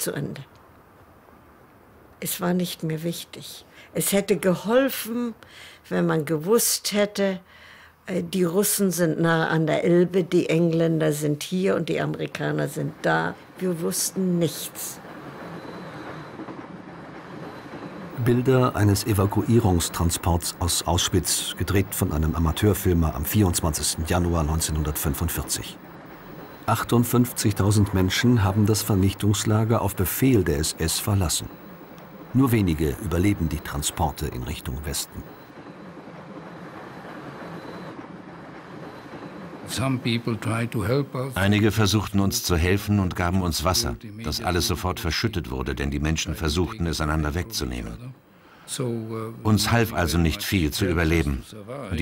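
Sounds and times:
train rolling: 10.9 - 48.0.

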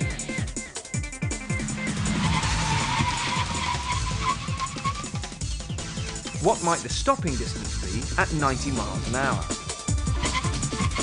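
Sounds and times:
background music with kick drum: 0.0 - 11.0
tyres skidding with squeal: 1.4 - 6.7, 9.4 - 11.0.

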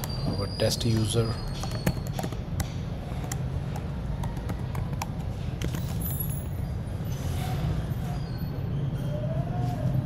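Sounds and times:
keyboard keys clicking: 0.9 - 5.9.

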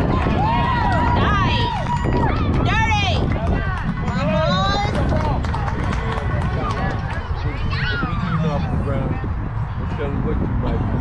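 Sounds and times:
people calling out and chattering: 0.0 - 11.0
steady low rumble: 0.0 - 11.0.

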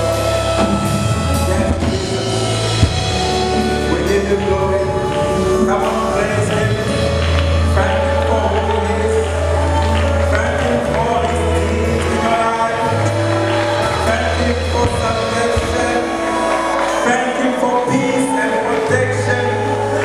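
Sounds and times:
guitar: 0.0 - 20.0
held bass notes: 0.0 - 20.0
keyboard: 0.0 - 20.0
people singing: 0.0 - 20.0.

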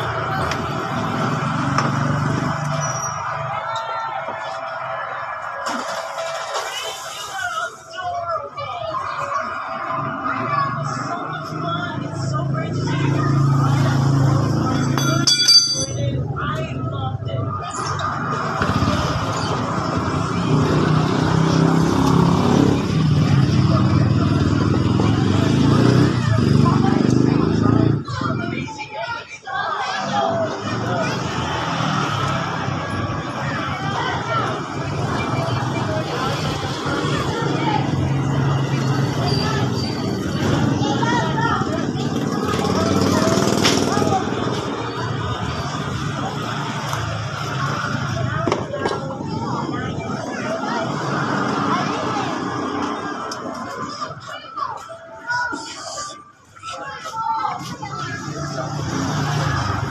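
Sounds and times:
indistinct talking: 0.0 - 59.9
scooter engine running: 35.0 - 45.0.

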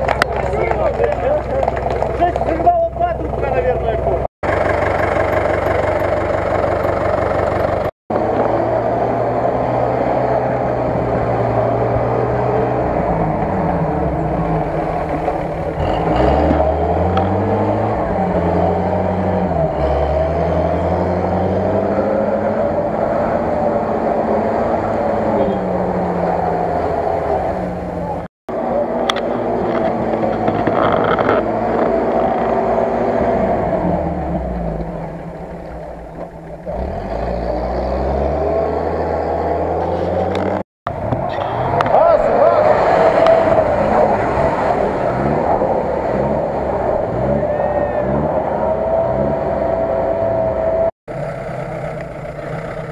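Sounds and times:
off-road engine revving: 0.0 - 52.9.

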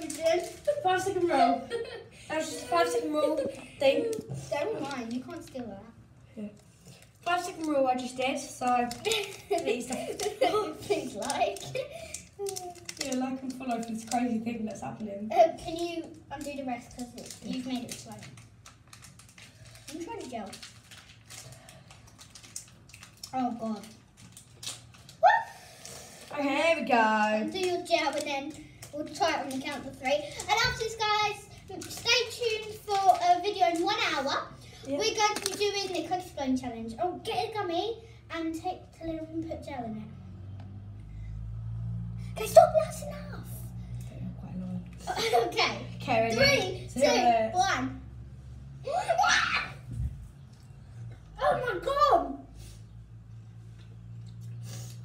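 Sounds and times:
hands handling plastic candy packets: 0.0 - 1.4, 2.4 - 5.7, 6.5 - 14.6, 15.6 - 26.3, 27.4 - 36.2.

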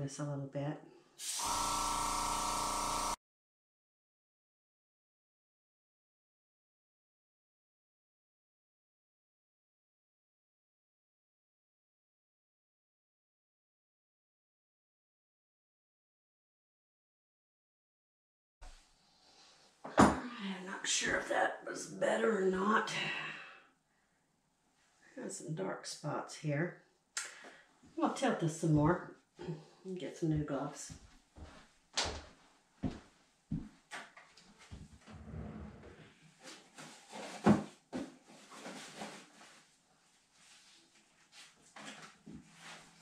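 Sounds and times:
woman speaking: 0.0 - 0.8, 20.1 - 23.5, 25.2 - 26.7, 28.0 - 31.0
airbrush hissing: 1.2 - 3.2
compressor motor hum: 1.4 - 3.2.

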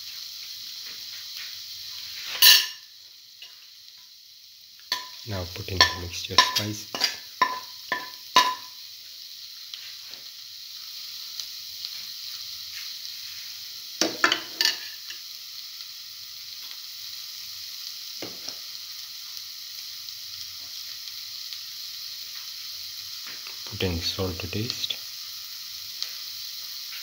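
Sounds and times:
food sizzling in oil: 0.0 - 27.0
stirring knocks against pan: 5.8 - 8.7.

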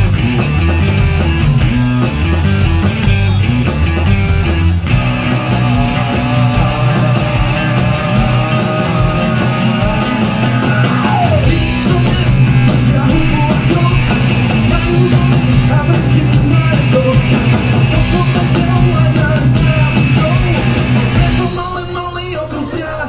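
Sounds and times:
electric guitar: 0.0 - 22.8
bass guitar: 0.0 - 23.0
drum kit with cymbal beat: 0.0 - 23.0.

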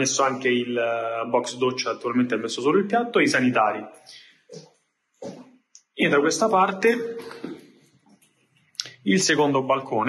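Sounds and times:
man's voice echoing: 0.0 - 4.3, 5.8 - 7.8, 8.8 - 10.0.

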